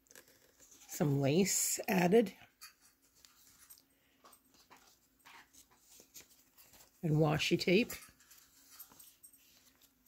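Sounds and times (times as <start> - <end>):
faint soft rustles: 2.8 - 10.0.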